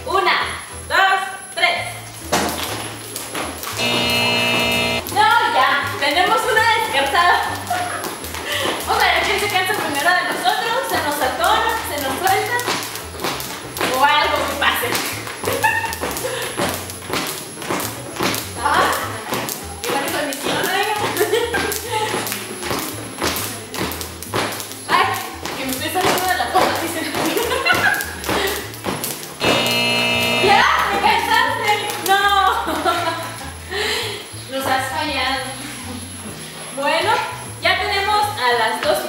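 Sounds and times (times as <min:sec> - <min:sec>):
music with singing: 0:00.0 - 0:39.0
jump ropes slapping tiled floor: 0:02.0 - 0:33.9.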